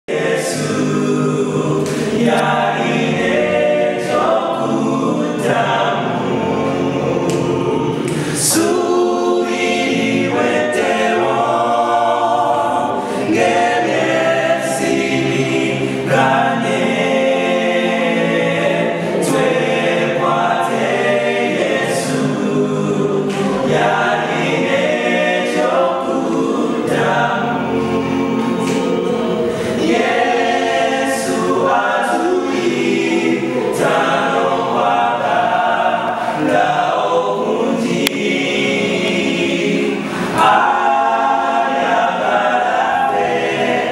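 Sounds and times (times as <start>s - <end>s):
a cappella group singing gospel: 0.0s - 43.9s.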